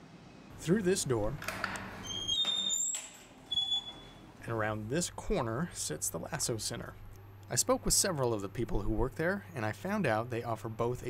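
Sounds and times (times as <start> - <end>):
door squeaking: 1.5 - 4.3.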